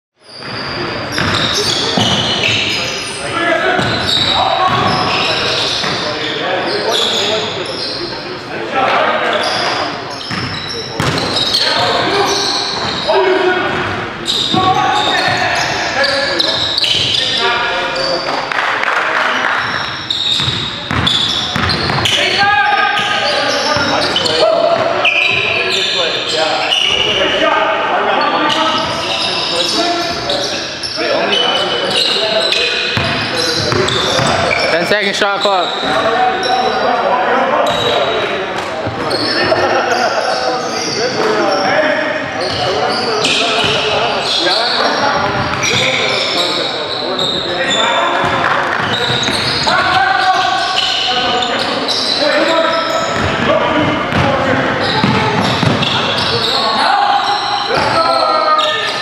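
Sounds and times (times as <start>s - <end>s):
players calling out: 0.3s - 59.0s
basketball bouncing on wooden floor: 3.8s - 4.0s, 10.3s - 11.3s, 20.4s - 22.0s, 55.0s - 56.0s.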